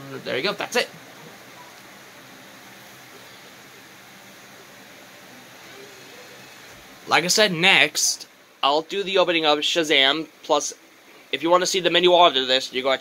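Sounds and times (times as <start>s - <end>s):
faint room tone hiss: 0.0s - 13.0s.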